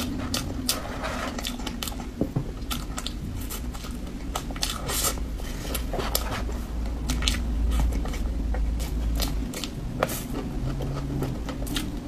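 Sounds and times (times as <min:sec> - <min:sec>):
person chewing cake: 0:00.0 - 0:12.0.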